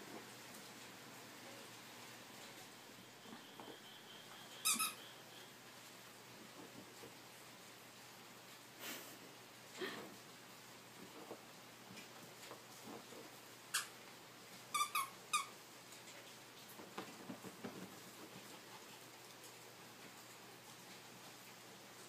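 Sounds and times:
squeaky dog toy squeaks: 4.6 - 5.1, 13.7 - 13.9, 14.7 - 15.5.

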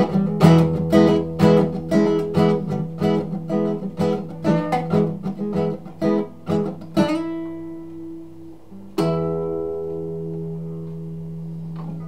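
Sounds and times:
classical guitar chord ringing: 0.0 - 12.0.

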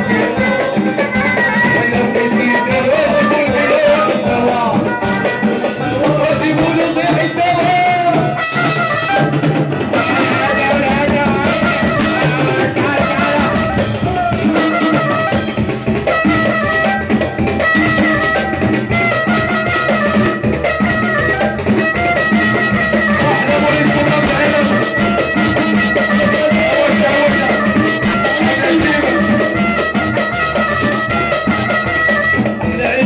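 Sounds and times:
drum kit: 0.0 - 33.0
hand drums: 0.0 - 33.0.

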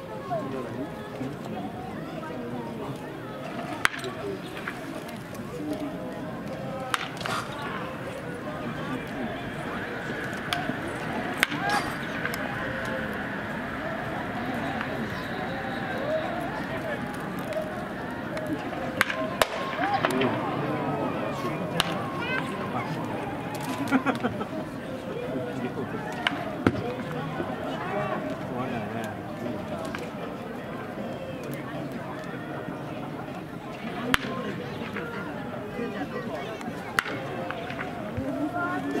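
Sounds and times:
distant voices: 0.0 - 39.0
baseball impact cracks: 3.7 - 5.8, 6.5 - 24.2, 37.0 - 38.3.

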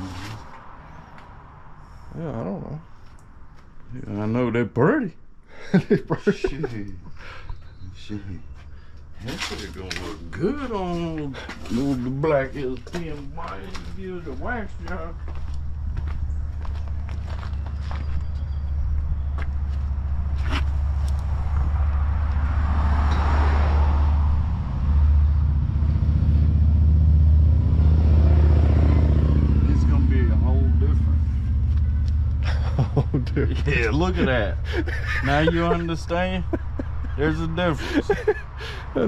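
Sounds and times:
vehicle engine humming: 5.8 - 39.0.

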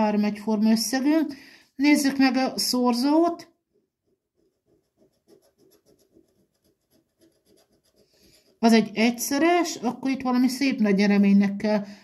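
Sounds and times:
coin scratching lottery ticket: 4.4 - 8.7.

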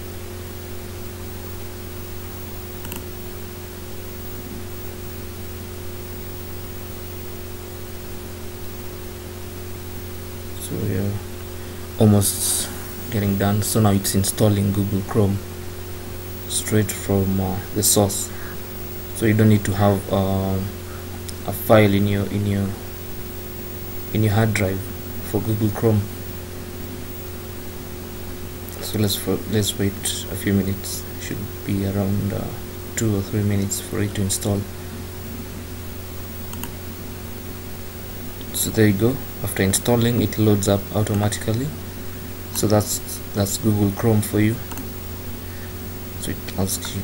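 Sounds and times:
low electrical hum: 0.0 - 47.0
steady hiss: 0.0 - 47.0.

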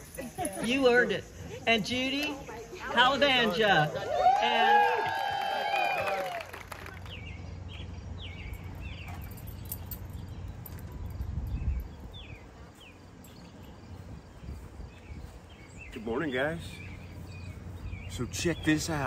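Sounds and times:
bird chirping: 7.1 - 19.0.

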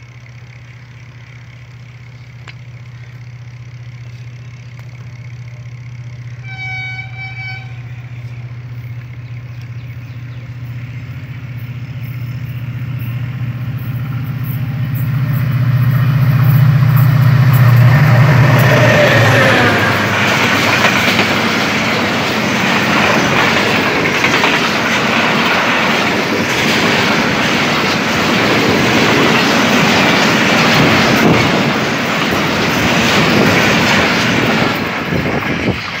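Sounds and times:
locomotive engine hum: 0.0 - 36.0
train horn blast: 6.3 - 8.9
train wheels clattering on rails: 8.2 - 36.0.

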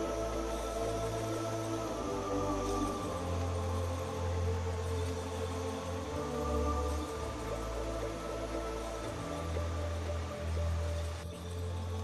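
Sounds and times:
slow ambient music: 0.0 - 12.0.

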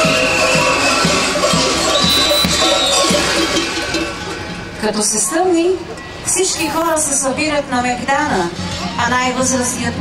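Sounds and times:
large metal bells clanging: 3.2 - 4.8.

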